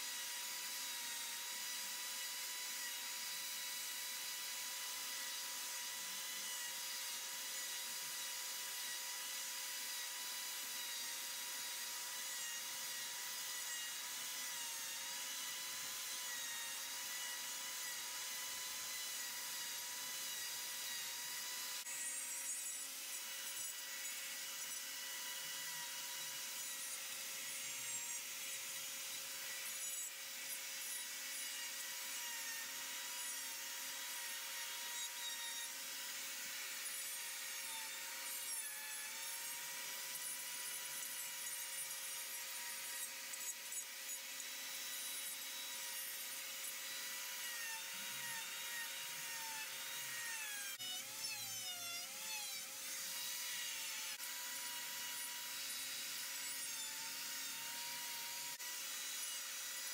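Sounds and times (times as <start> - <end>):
die grinder whining into wood: 0.0 - 59.9.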